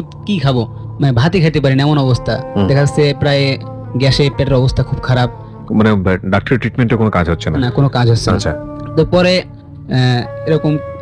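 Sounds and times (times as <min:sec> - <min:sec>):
background music with held notes: 0:00.0 - 0:11.0
talk show speech: 0:00.0 - 0:11.0.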